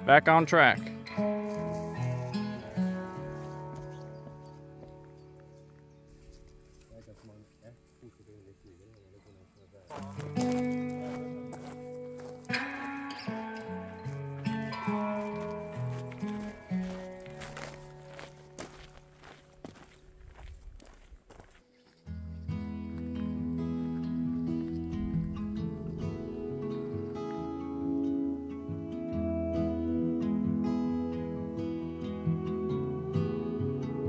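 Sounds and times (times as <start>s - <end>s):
plucked background music: 0.0s - 8.6s, 9.9s - 19.8s, 22.1s - 34.0s.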